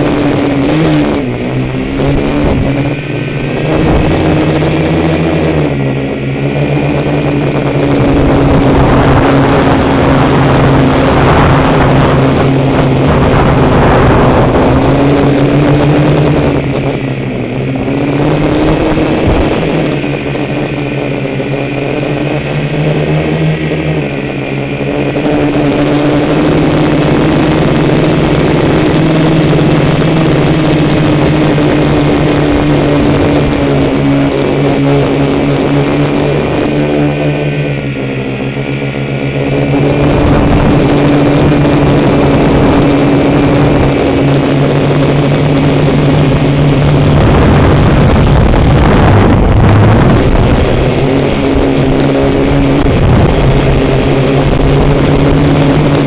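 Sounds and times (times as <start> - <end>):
drone propellers buzzing: 0.0 - 56.0
low rumble: 0.0 - 56.0.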